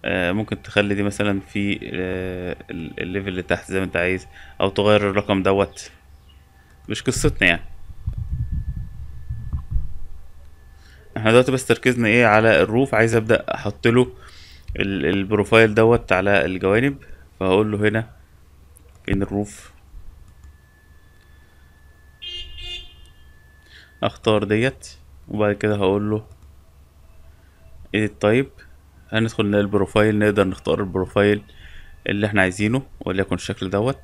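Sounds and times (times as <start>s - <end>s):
faint high whine: 0.0s - 34.0s.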